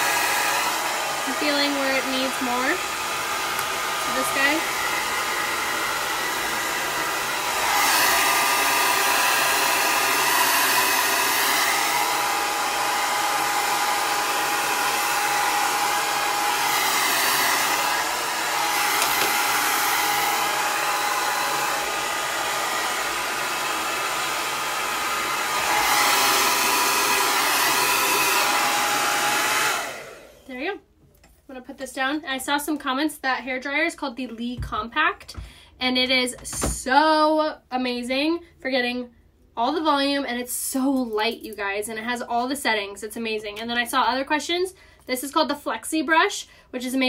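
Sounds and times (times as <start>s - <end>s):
hair dryer switching off: 0.0s - 30.5s
hair dryer blowing: 0.0s - 30.8s.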